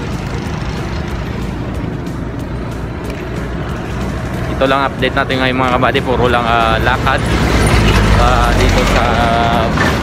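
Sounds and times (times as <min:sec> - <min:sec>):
passing traffic rumble: 0:00.0 - 0:10.0.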